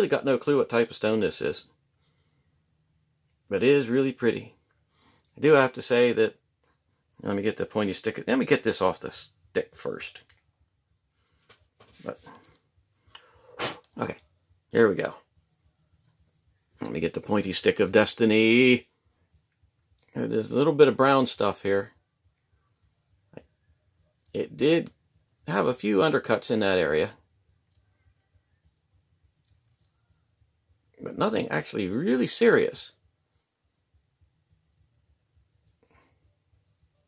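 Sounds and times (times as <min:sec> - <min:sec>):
faint ticks: 0:22.6 - 0:23.4, 0:27.6 - 0:28.1, 0:29.2 - 0:30.1.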